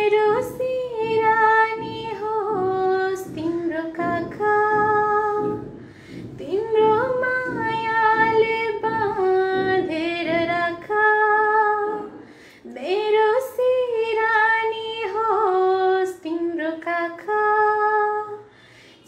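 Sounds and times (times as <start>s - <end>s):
woman singing unaccompanied: 0.0s - 5.7s, 6.4s - 18.4s.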